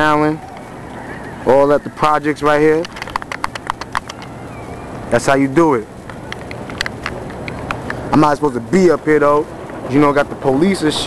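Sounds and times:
sharp clicks: 2.3s - 4.5s, 6.0s - 8.1s.

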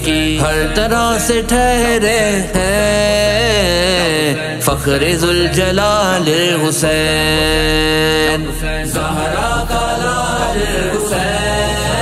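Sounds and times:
man singing devotional song: 0.0s - 11.8s
low drone: 6.8s - 12.0s.

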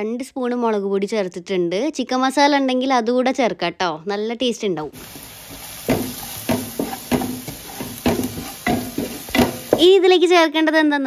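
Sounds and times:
onions sizzling in a pot: 4.9s - 10.1s
wooden spatula scraping pot: 5.0s - 10.0s
spatula knocking against pot: 5.1s - 9.9s.

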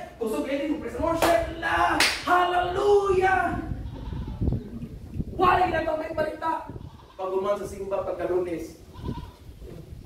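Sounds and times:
man speaking in high voice: 0.0s - 3.8s, 5.3s - 8.8s.

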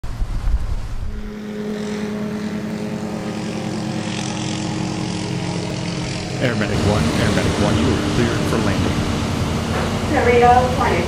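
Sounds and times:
rotor flutter: 0.0s - 10.5s
helicopter engine drone: 0.6s - 11.0s.

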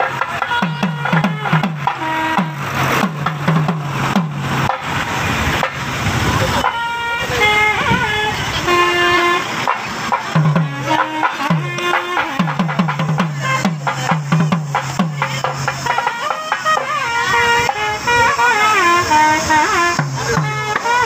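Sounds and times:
crowd noise: 0.0s - 21.0s
procession drums beating: 0.0s - 21.0s
long pitched horn notes: 6.6s - 9.8s, 15.8s - 21.0s.

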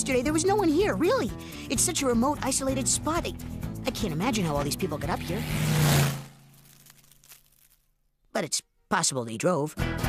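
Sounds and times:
cartoon car whooshing past: 5.0s - 6.4s.

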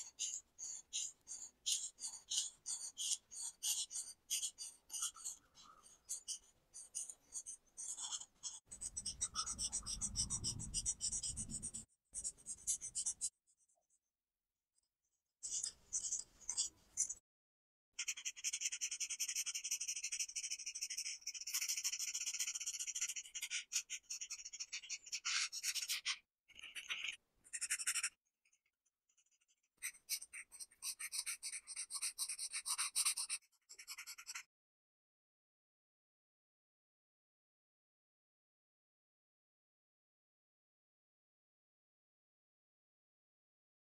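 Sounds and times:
marker tips scratching on paper: 0.0s - 13.4s, 15.4s - 17.2s, 18.0s - 28.2s, 29.8s - 34.5s.

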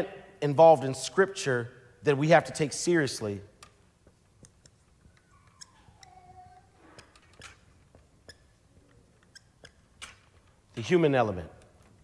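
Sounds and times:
marker squeaking on paper: 4.4s - 10.4s.

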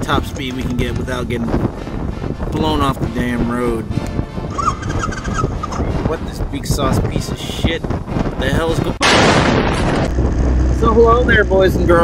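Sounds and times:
low wind rumble: 0.0s - 12.0s.

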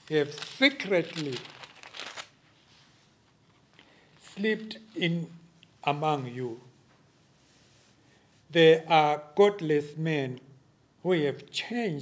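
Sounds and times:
page turning rustle: 0.0s - 3.9s.

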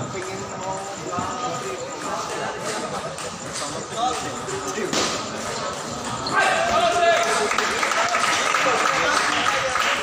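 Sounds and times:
spectators shouting: 6.3s - 8.3s.

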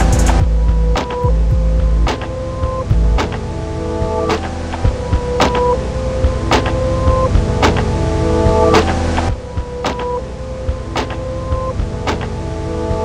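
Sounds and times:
instrumental hip-hop beat: 0.0s - 13.0s.

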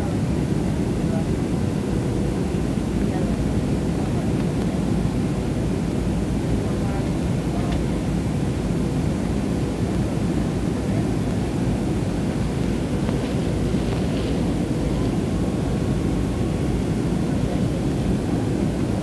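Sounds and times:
jet cabin engine rush: 0.0s - 19.0s.

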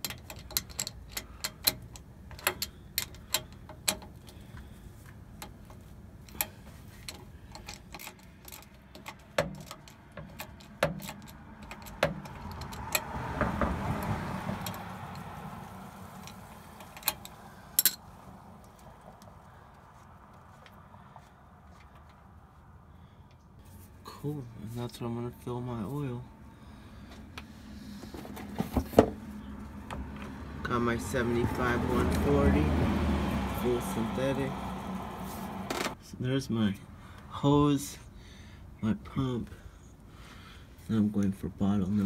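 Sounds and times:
ratchet clicking: 0.0s - 4.4s, 5.4s - 13.2s, 13.9s - 18.0s.

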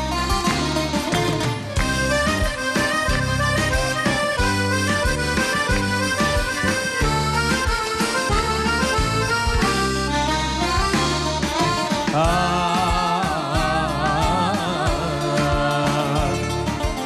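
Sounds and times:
live band playing instrumental: 0.0s - 17.0s.

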